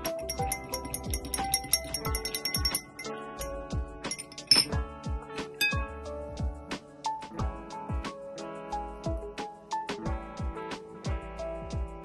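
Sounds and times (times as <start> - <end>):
teaspoon clinking against glass: 0.0 - 4.8, 5.6 - 5.9
background music with beat: 0.0 - 12.0.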